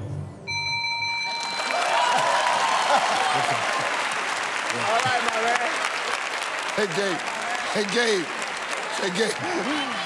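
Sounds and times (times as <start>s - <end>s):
bell-like chime: 0.5s - 1.9s
audience applause and cheering: 1.3s - 10.0s.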